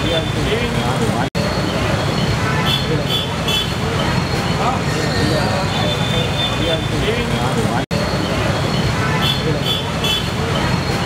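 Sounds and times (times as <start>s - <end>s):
faint voices talking: 0.0s - 11.0s
street traffic rumble: 0.0s - 11.0s.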